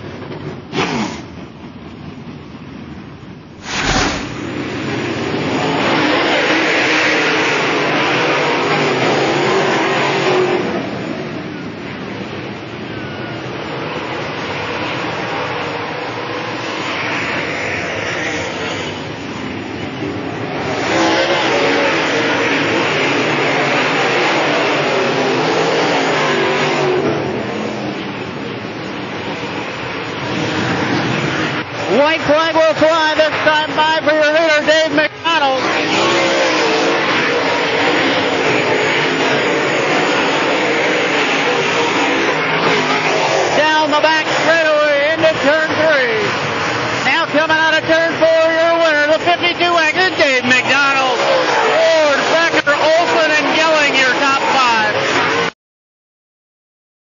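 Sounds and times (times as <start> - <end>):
race car engines running hard: 0.0 - 55.5.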